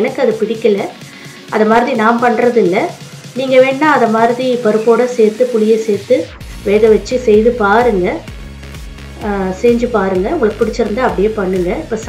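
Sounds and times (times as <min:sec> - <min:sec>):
woman's voice: 0:00.0 - 0:08.3, 0:09.2 - 0:12.0.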